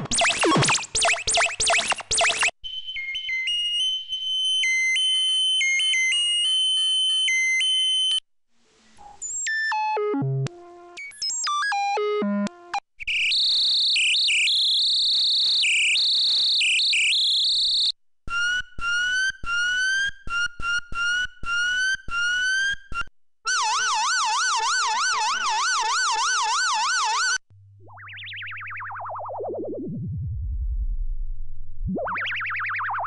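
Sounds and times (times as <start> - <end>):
synth siren tones alternating: 0.0 - 8.2, 13.2 - 31.2
short rising synth chirps: 0.1 - 2.5.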